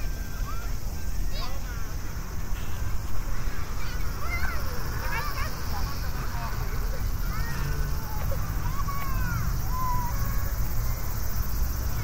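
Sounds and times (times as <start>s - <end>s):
cicadas droning: 0.0s - 12.0s.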